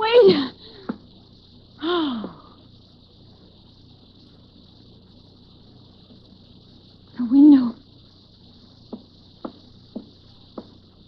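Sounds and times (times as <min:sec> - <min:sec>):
crickets chirring: 0:00.0 - 0:11.0
woman sighing: 0:01.8 - 0:02.6.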